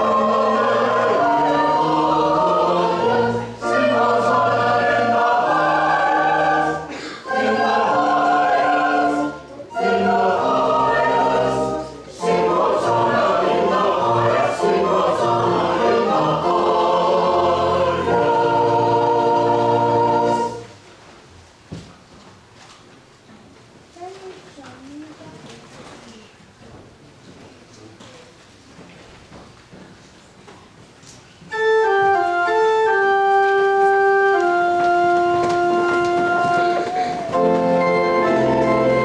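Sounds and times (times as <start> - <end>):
church choir singing: 0.0 - 20.8, 32.0 - 39.0.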